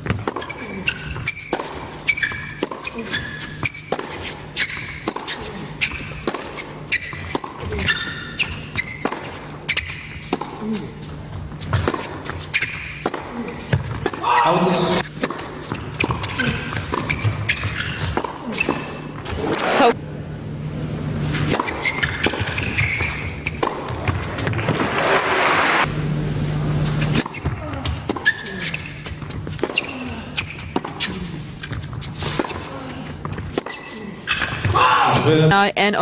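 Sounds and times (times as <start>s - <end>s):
tennis ball hit by rackets: 0.0s - 3.0s, 5.0s - 10.7s, 11.6s - 14.4s, 15.1s - 19.8s, 21.4s - 25.0s, 29.0s - 34.8s.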